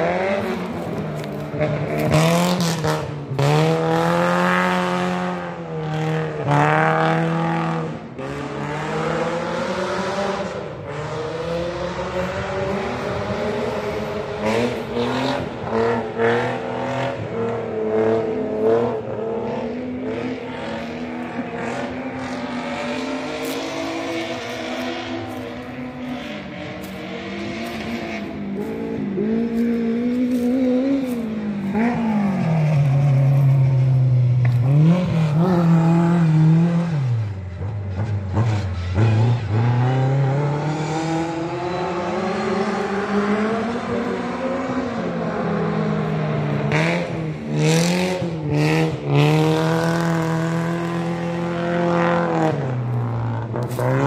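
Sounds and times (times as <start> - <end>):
racing car engine revving: 0.0 - 54.0.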